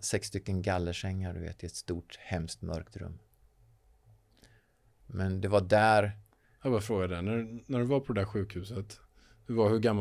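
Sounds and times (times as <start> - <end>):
man speaking: 0.0 - 3.2, 5.1 - 10.0.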